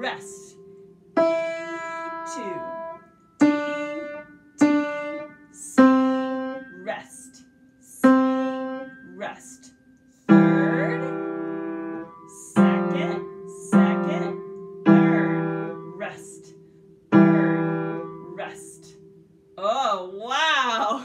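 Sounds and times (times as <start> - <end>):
piano chord: 0.0 - 6.8, 8.0 - 9.2, 10.3 - 19.3
upright piano single notes: 0.0 - 7.0, 8.0 - 9.2, 10.2 - 19.4.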